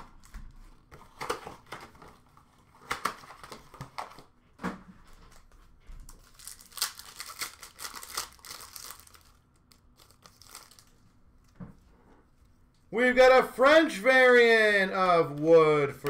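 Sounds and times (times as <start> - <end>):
foil wrapper crinkling and tearing: 6.1 - 11.0.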